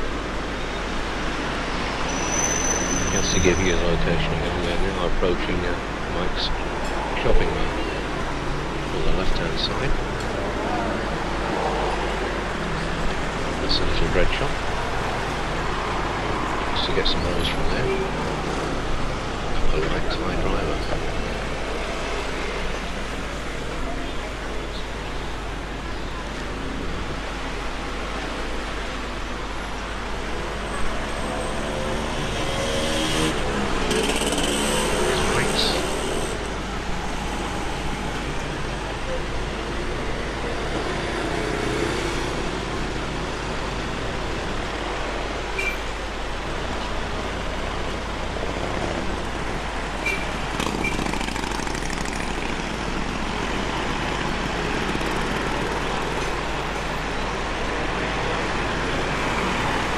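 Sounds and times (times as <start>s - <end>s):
street traffic: 0.0s - 59.9s
indistinct voices: 3.1s - 8.0s, 33.2s - 36.6s.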